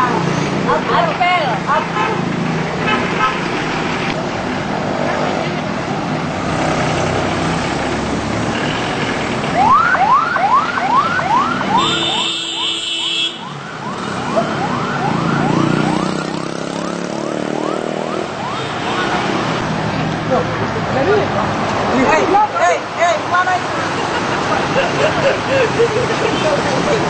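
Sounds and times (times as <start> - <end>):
street traffic noise: 0.0 - 27.0
ambulance siren yelp: 9.5 - 19.4.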